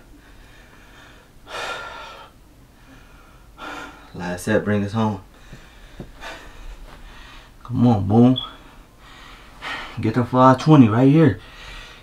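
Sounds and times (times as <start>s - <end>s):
man breathing hard: 0.1s - 4.2s, 5.3s - 7.6s, 8.6s - 10.0s, 11.4s - 12.0s.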